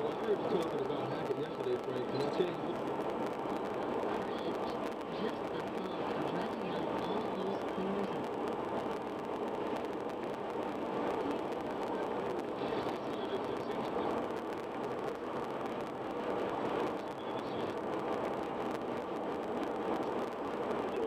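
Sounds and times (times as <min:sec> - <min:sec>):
road and tyre noise: 0:00.0 - 0:21.0.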